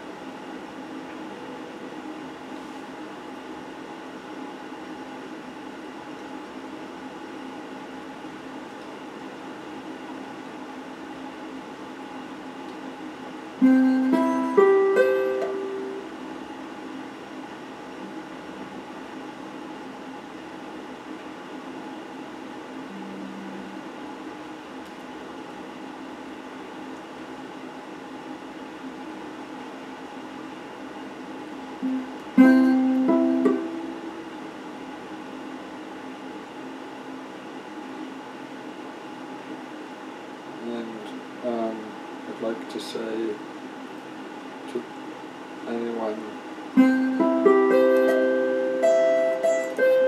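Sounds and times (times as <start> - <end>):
steady hum: 0.0 - 50.0
electric guitar: 13.6 - 16.2, 31.8 - 34.4, 46.8 - 50.0.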